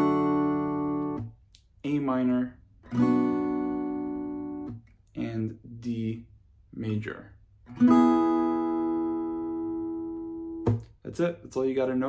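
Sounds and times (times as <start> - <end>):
acoustic guitar chord strummed: 0.0 - 1.3, 2.9 - 4.7, 7.7 - 10.8
short thump: 10.6 - 10.9.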